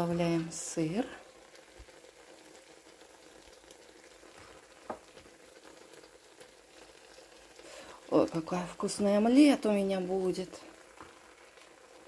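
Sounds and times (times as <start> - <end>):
omelette sizzling in frying pan: 0.0 - 12.0.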